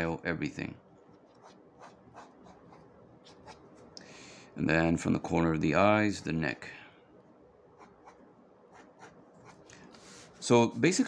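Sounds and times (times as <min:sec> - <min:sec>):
pencil scratching on paper: 0:01.3 - 0:03.8, 0:07.8 - 0:10.4.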